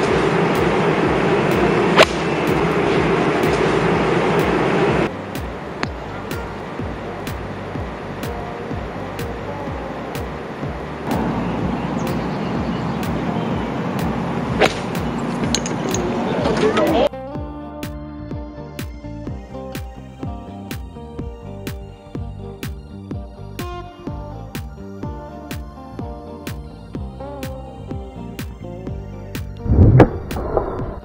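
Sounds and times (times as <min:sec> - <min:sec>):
golf club striking ball: 0:02.0 - 0:02.4, 0:14.6 - 0:16.1.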